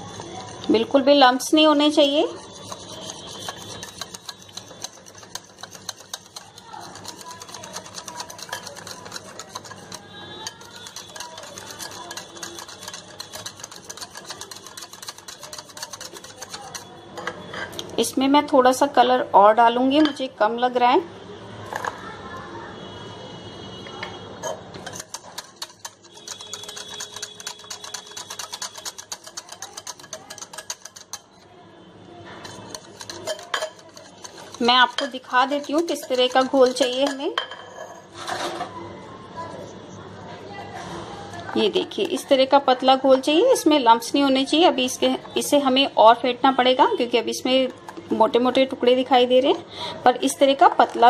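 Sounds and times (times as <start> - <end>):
utensil clicking on glass bowl: 2.6 - 16.8, 24.8 - 31.3, 32.4 - 37.2.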